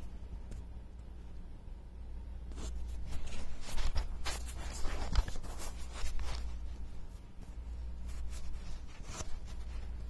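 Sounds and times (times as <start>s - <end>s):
steady low hum: 0.0s - 10.0s
cardboard and paper rustling: 2.6s - 10.0s.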